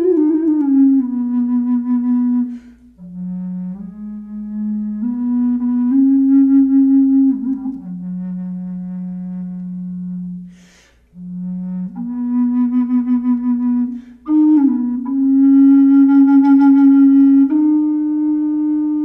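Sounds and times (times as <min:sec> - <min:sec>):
wooden flute melody: 0:00.0 - 0:19.0
quick breath: 0:02.5 - 0:03.0, 0:10.5 - 0:11.1.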